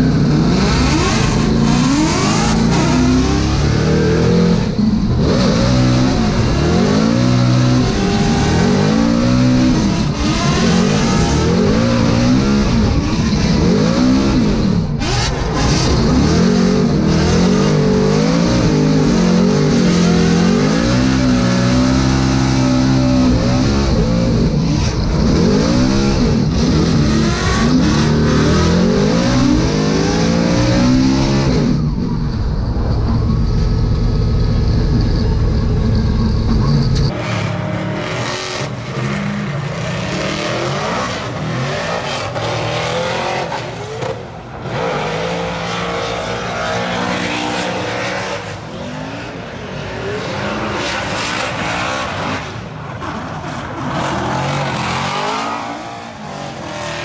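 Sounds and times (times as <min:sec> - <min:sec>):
car engine revving in cabin: 0:00.0 - 0:37.4.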